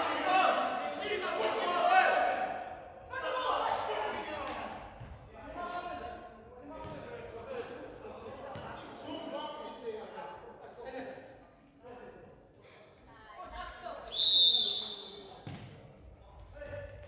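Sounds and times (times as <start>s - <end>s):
players shouting: 0.0s - 4.8s
ball kicked and bouncing: 15.4s - 15.8s.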